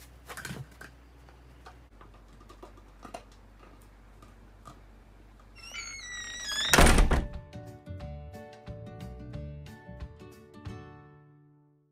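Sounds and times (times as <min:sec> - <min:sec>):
light background music: 0:07.2 - 0:11.3.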